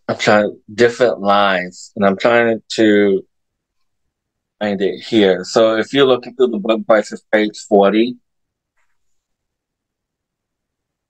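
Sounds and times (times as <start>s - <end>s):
man speaking: 0.0s - 3.2s, 4.6s - 8.2s.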